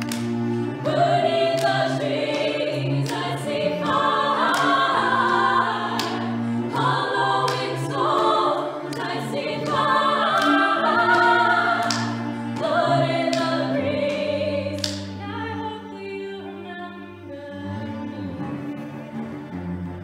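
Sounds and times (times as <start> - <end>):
cellos holding low notes: 0.0 - 20.0
women singing in harmony: 0.7 - 18.3.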